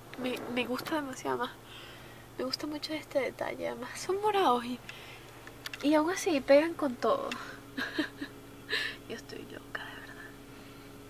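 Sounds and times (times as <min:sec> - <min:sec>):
steady low hum: 0:00.0 - 0:11.0
woman whispering: 0:09.5 - 0:10.4.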